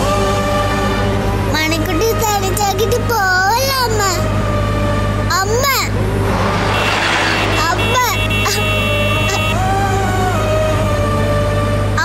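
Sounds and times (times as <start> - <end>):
background music: 0.0 - 12.0
car hum: 3.6 - 10.3.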